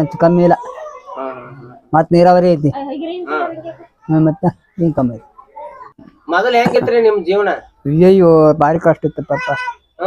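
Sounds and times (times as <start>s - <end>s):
man speaking: 6.3s - 9.6s.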